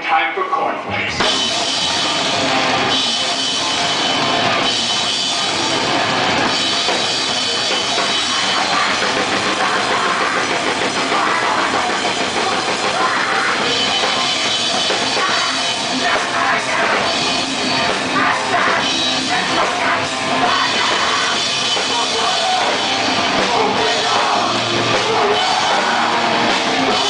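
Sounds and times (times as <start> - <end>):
heavy distorted guitars: 0.0 - 27.0
grindcore band playing live: 0.8 - 27.0
pounding drum kit: 0.8 - 27.0.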